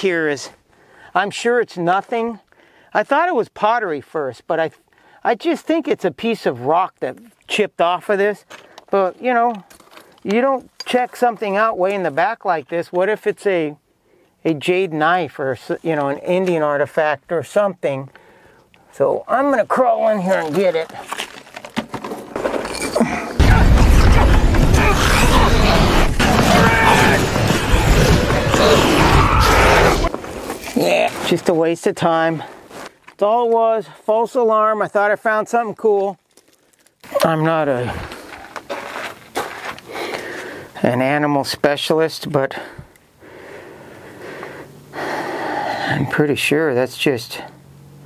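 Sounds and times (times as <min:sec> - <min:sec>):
person crawling over gravel and rock: 0:08.4 - 0:12.2, 0:19.4 - 0:23.4, 0:26.4 - 0:34.1, 0:35.6 - 0:40.8
man exhaling noisily: 0:43.2 - 0:46.0.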